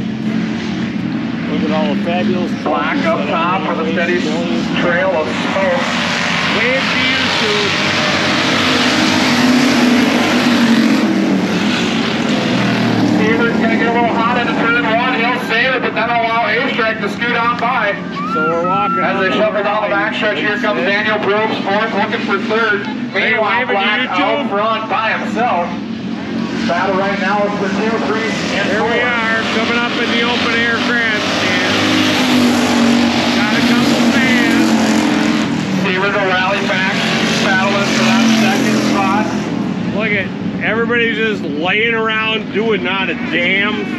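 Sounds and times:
race cars running past: 0.0 - 43.9
announcer over loudspeakers: 13.1 - 25.8, 33.3 - 35.2, 42.2 - 43.9.

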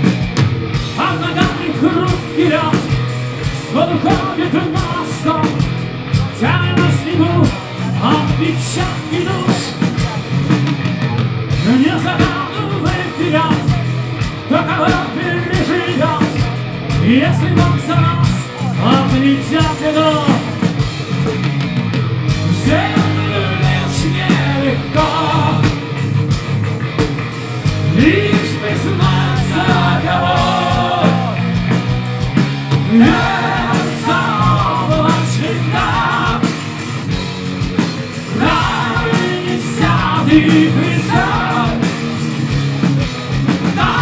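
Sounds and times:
bass guitar: 0.0 - 44.0
distorted guitars: 0.0 - 44.0
drum hits: 0.0 - 44.0
heavy metal band playing live: 0.0 - 44.0
person singing: 32.9 - 36.6, 38.3 - 42.0, 43.7 - 44.0.

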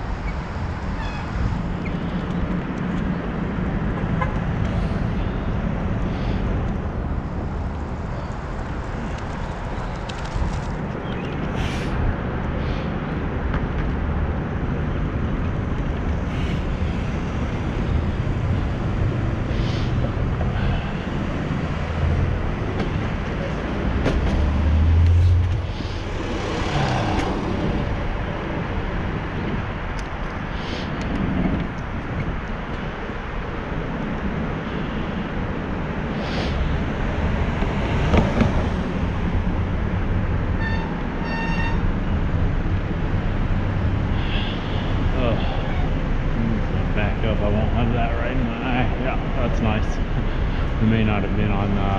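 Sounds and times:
buses and cars passing: 0.0 - 51.9
city traffic rushing: 0.0 - 51.9.

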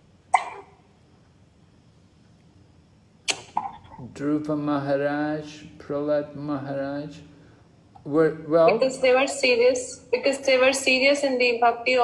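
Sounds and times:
faint room noise: 0.0 - 12.0
person speaking: 8.0 - 12.0.

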